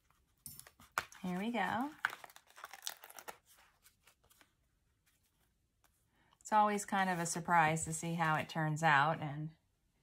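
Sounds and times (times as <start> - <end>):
cardstock paper crackling: 0.7 - 5.4.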